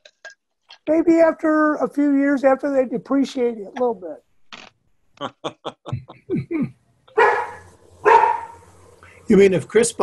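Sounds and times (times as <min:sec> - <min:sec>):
dog barking: 0:07.1 - 0:08.6.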